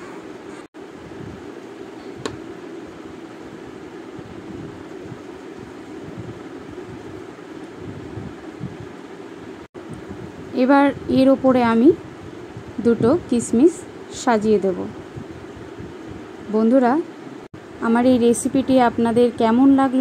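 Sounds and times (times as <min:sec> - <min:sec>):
low background hum and hiss: 0:00.0 - 0:20.0.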